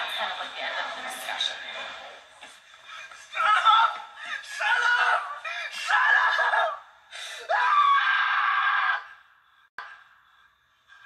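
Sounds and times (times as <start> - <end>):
person screaming shrilly: 3.4 - 6.8, 7.5 - 9.2.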